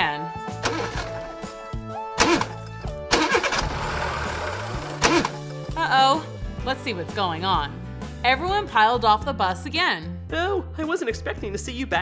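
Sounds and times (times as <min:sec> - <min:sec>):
light background music: 0:00.0 - 0:12.0
bus engine cranking: 0:00.6 - 0:01.4, 0:02.2 - 0:05.5.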